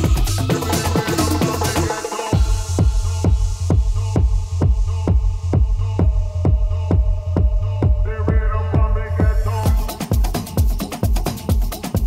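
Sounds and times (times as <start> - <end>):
kick drum: 0.0 - 1.2, 2.3 - 12.0
deep bass hum: 0.0 - 12.0
electronic dance music: 0.0 - 12.0.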